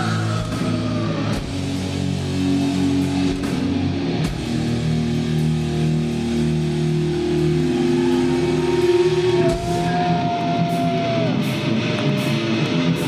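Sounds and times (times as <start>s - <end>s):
distorted electric guitars: 0.0s - 13.0s
drums: 0.0s - 13.0s.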